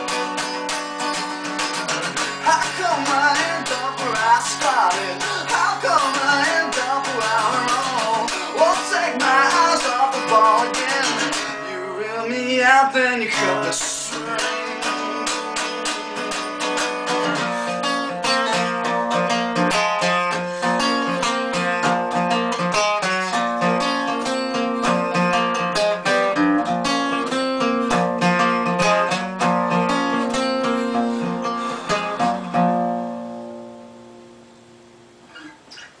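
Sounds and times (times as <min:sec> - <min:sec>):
acoustic guitar picking: 0:00.0 - 0:36.0.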